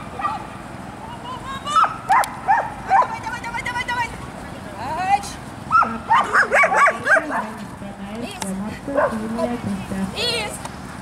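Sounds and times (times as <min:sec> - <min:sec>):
dog yipping excitedly: 0:01.7 - 0:03.2, 0:05.7 - 0:07.4.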